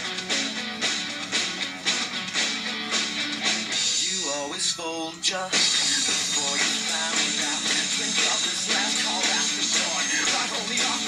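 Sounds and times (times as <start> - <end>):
drum kit rock beat: 0.0 - 11.0
guitar backing track: 0.0 - 11.0.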